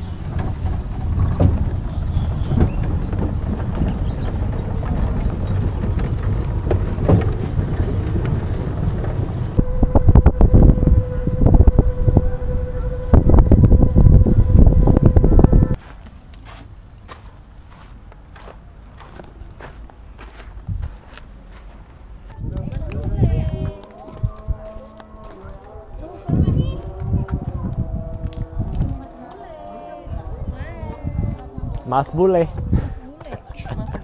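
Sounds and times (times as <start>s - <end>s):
steady whine: 0.0s - 15.8s
wind buffeting microphone: 0.0s - 15.8s, 17.1s - 34.0s.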